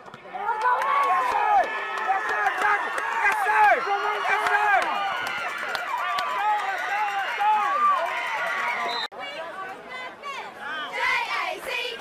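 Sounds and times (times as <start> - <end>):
crowd yelling and cheering: 0.1 - 12.0.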